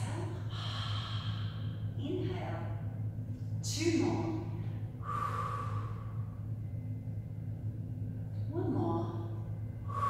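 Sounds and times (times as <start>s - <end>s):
steady low hum: 0.0s - 10.0s
woman breathing out: 0.4s - 1.9s, 5.0s - 6.4s.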